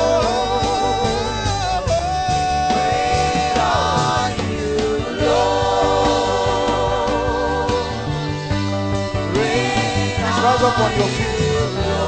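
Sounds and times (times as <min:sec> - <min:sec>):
choir singing: 0:00.0 - 0:01.7, 0:02.4 - 0:12.0
instrumental backing with bass and beat: 0:00.0 - 0:12.0.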